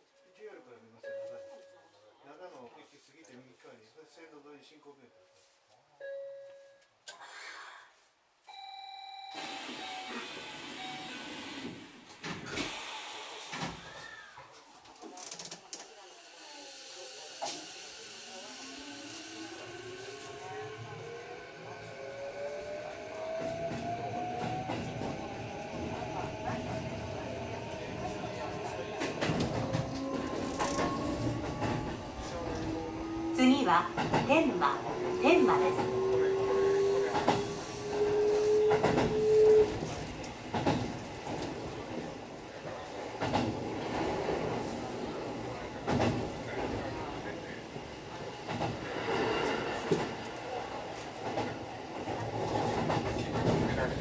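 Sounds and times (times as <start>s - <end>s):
train wheels rolling on rails: 16.8s - 54.0s.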